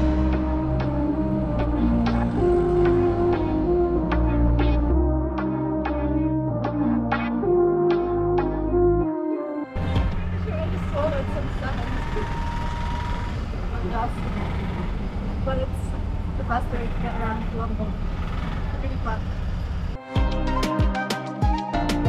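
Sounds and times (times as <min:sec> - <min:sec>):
auto-rickshaw engine running: 0:00.0 - 0:04.8, 0:09.8 - 0:20.0
music: 0:00.0 - 0:11.8, 0:20.0 - 0:22.0.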